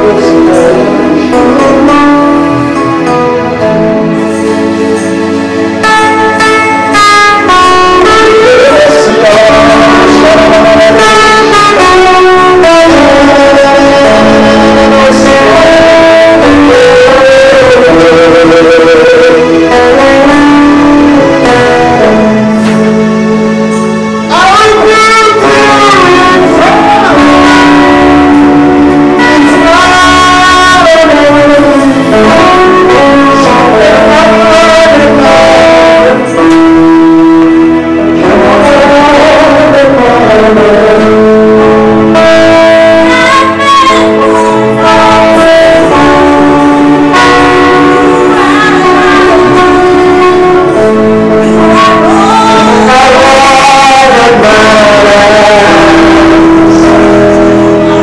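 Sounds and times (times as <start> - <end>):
guitar sustained notes: 0.0 - 58.0
keyboard sustained notes: 0.0 - 58.0
live band music: 0.0 - 58.0.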